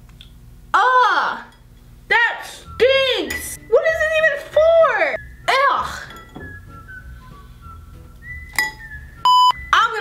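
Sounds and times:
utensil clinking glass bowl: 0:03.3 - 0:03.6, 0:06.0 - 0:06.5, 0:08.6 - 0:08.9
faint high whistle-like tones: 0:06.5 - 0:09.8.

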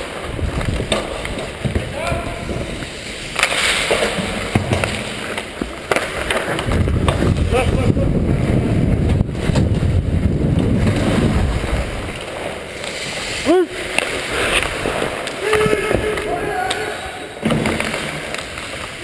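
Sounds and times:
skates scraping on ice: 0:00.0 - 0:19.0
wind rumble on microphone: 0:00.3 - 0:02.9, 0:06.6 - 0:12.2
hockey stick clicks: 0:03.3 - 0:07.2, 0:13.9 - 0:16.9, 0:17.5 - 0:19.0.

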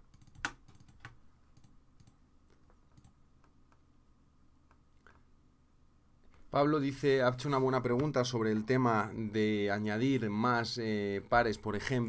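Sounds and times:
computer keystrokes and clicks: 0:00.0 - 0:03.8.

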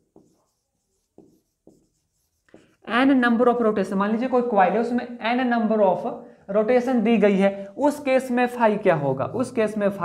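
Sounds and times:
marker writing on whiteboard: 0:00.0 - 0:03.2.

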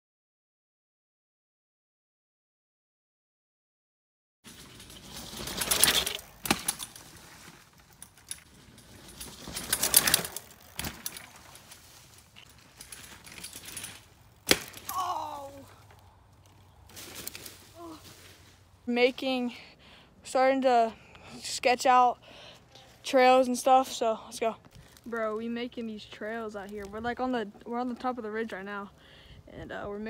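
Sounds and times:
rustling through dry leaves: 0:04.5 - 0:18.8
sharp knocks and cracks: 0:14.4 - 0:15.0.

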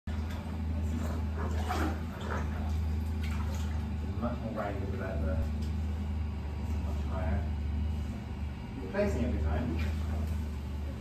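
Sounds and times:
treadmill humming: 0:00.1 - 0:11.0
water sloshing in tank: 0:00.1 - 0:11.0.

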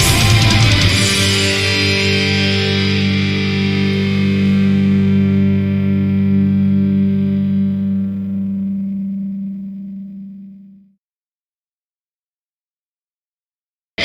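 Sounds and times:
distorted electric guitar chord: 0:00.0 - 0:10.9.

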